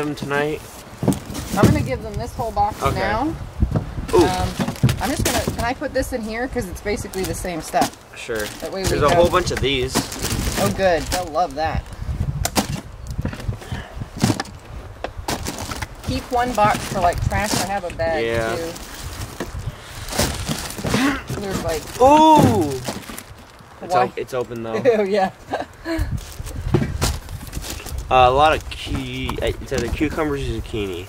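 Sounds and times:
boxes knocking and rustling: 0.0s - 5.8s, 7.7s - 11.7s, 12.4s - 14.6s, 15.2s - 23.4s, 28.9s - 30.3s
low steady rumble: 25.4s - 31.0s.

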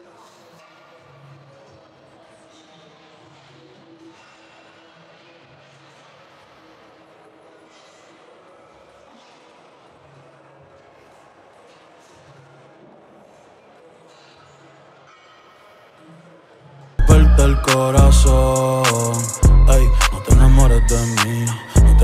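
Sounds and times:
faint indistinct voices: 0.0s - 22.0s.

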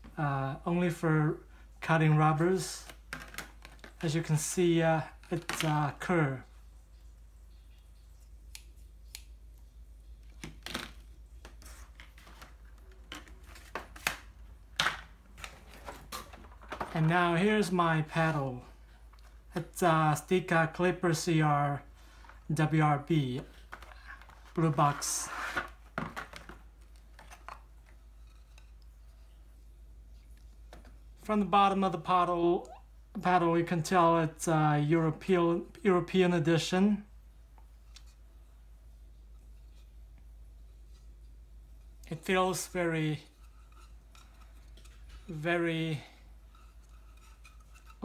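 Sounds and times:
faint room hum: 0.0s - 48.0s
plastic packaging clicks and rustles: 2.8s - 4.1s, 10.3s - 17.2s, 25.5s - 28.0s.

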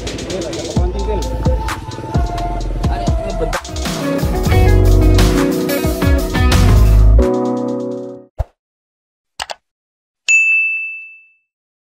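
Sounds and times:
notification bell ding: 10.3s - 11.5s.

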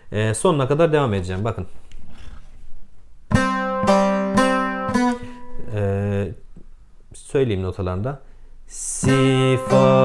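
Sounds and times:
plucked lute notes: 3.3s - 5.8s, 9.0s - 10.0s.

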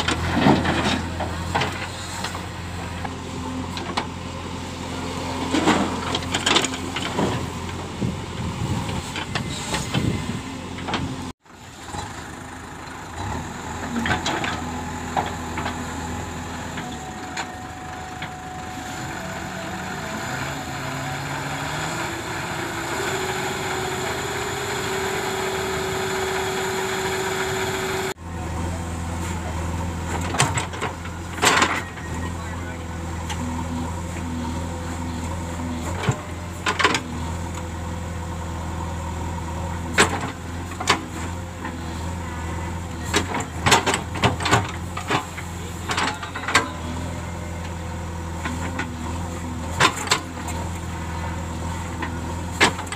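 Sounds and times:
diesel engine revving under load: 0.0s - 52.9s.

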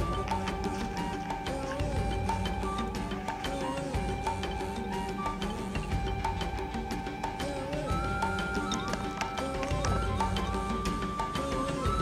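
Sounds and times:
held tones and wavering melody: 0.0s - 12.0s
light percussive ticks: 0.0s - 12.0s.

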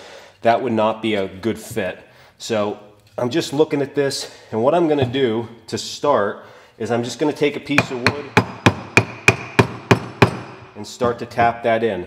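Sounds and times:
wood block knocking axe handle: 7.8s - 11.6s.

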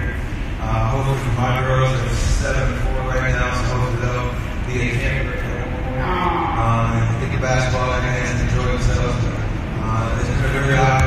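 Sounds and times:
man talking over loudspeaker: 0.0s - 11.0s
steady low hum: 0.0s - 11.0s.

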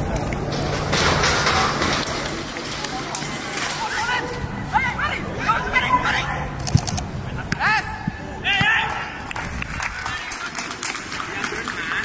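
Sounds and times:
footballers shouting: 7.3s - 9.4s.

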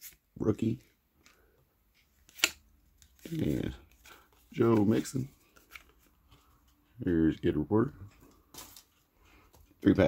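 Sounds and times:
cards rustling: 1.2s - 6.8s, 8.1s - 10.0s
card snapping: 2.3s - 2.6s.

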